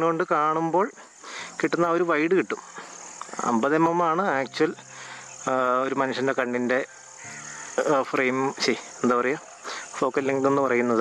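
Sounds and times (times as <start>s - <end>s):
high-pitched insect drone: 0.0s - 11.0s
man speaking: 7.8s - 11.0s.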